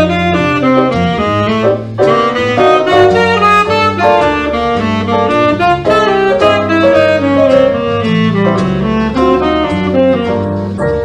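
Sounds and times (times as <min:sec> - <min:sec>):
jazz blues accompaniment: 0:00.0 - 0:11.0
low bass line: 0:00.0 - 0:11.0
saxophone improvising: 0:00.0 - 0:11.0.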